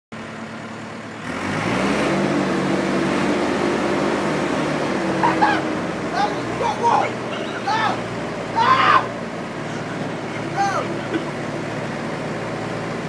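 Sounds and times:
forklift engine revving: 0:00.2 - 0:13.0
man squealing: 0:05.2 - 0:11.2.

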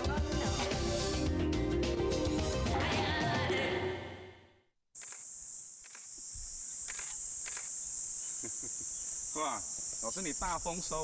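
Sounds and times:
insect chorus drone: 0:05.0 - 0:11.0.

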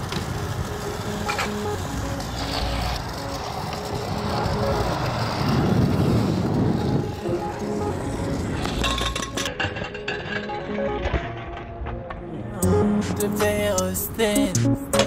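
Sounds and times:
scooter wheels rolling on asphalt: 0:00.0 - 0:12.4
music playing: 0:00.0 - 0:15.0.

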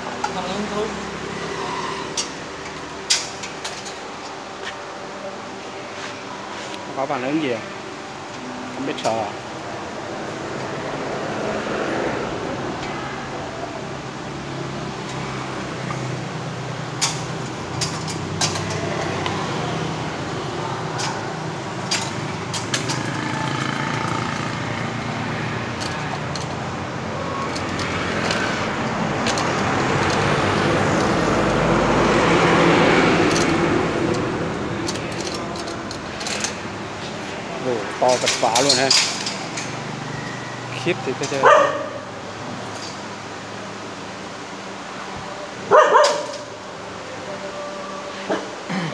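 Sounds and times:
dog barking: 0:41.4 - 0:42.1, 0:45.7 - 0:46.5.

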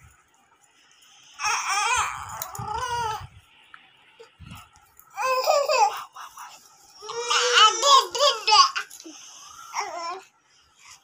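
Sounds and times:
baby crying: 0:01.4 - 0:03.3, 0:07.0 - 0:08.9, 0:09.7 - 0:10.2.

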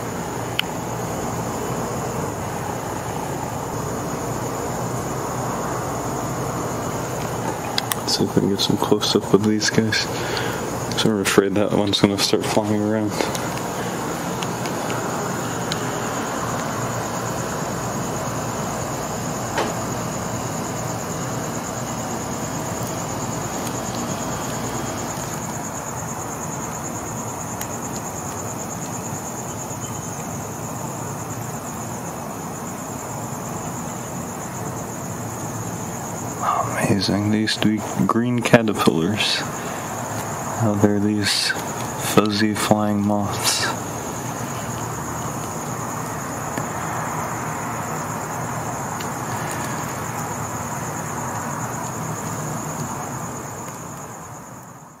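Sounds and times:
background hiss: 0:00.0 - 0:55.0
crickets trilling: 0:00.0 - 0:55.0
low rumbling background noise: 0:00.0 - 0:55.0.

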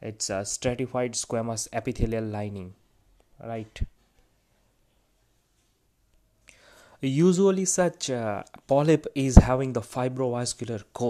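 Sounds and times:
soft intake of breath: 0:06.4 - 0:07.0.

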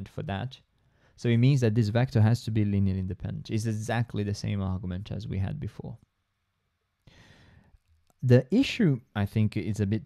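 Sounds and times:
man drawing breath: 0:07.0 - 0:07.8.

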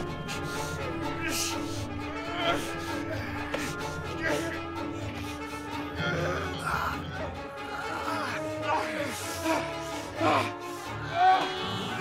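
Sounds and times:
film music with low drone: 0:00.0 - 0:12.0.

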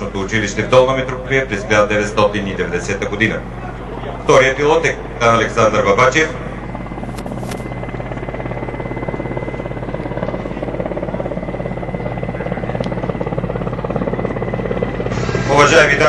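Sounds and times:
helicopter flying low: 0:00.0 - 0:16.0.

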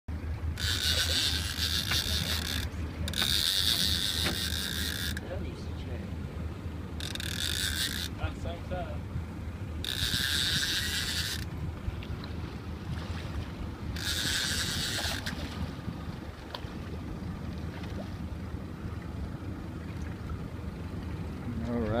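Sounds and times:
steady low hum: 0:00.1 - 0:22.0
small mechanism whirring: 0:00.6 - 0:05.2, 0:07.0 - 0:08.1, 0:09.8 - 0:11.5, 0:13.9 - 0:15.4.

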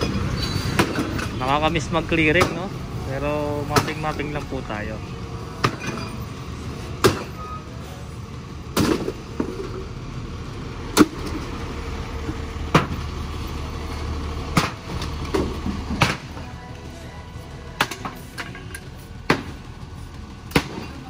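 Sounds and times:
truck engine idling: 0:00.0 - 0:21.0.

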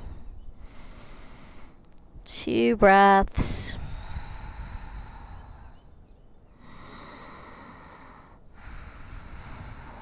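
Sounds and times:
person breathing slowly: 0:00.0 - 0:01.9, 0:03.8 - 0:10.0.

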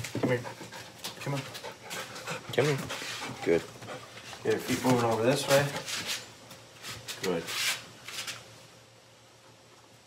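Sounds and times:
rubbing scuffing noises: 0:01.3 - 0:03.4, 0:04.0 - 0:08.5
person speaking: 0:04.4 - 0:06.0.

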